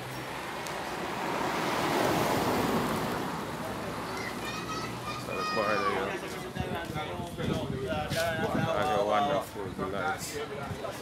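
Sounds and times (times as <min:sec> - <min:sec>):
rushing road noise: 0:00.0 - 0:11.0
people's voices: 0:02.8 - 0:11.0.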